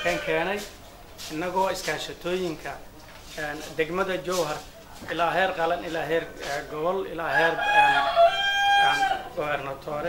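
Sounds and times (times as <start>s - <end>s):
man speaking: 0.0s - 0.7s, 3.4s - 8.1s, 8.8s - 10.0s.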